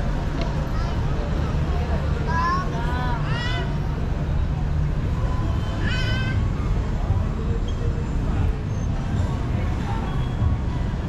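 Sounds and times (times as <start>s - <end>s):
low rumble of street ambience: 0.0s - 11.0s.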